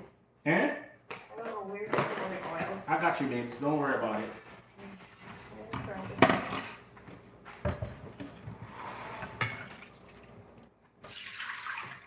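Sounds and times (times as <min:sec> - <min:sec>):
dishes and cookware clattering: 0:05.7 - 0:06.9, 0:09.2 - 0:10.0.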